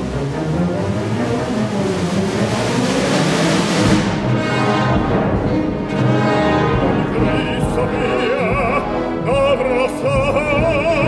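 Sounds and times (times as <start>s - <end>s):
orchestra playing loudly: 0.0s - 11.0s.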